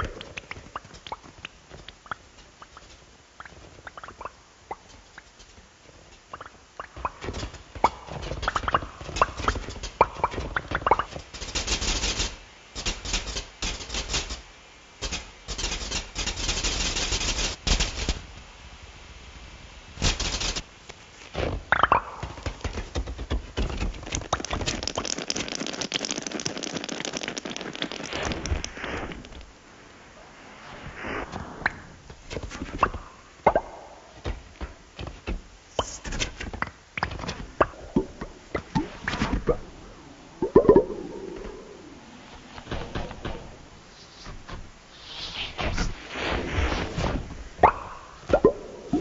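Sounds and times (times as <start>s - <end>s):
crackling electronic music: 21.6s - 30.2s, 31.0s - 34.4s, 35.7s - 44.0s.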